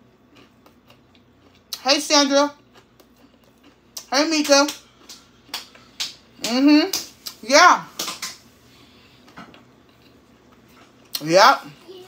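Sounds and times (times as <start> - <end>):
faint chewing: 0.1 - 1.8, 2.6 - 4.1, 4.7 - 6.4, 8.8 - 11.9.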